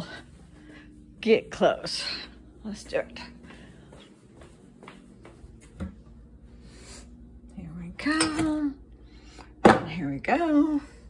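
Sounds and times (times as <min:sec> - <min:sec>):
faint footsteps: 0:00.0 - 0:06.6.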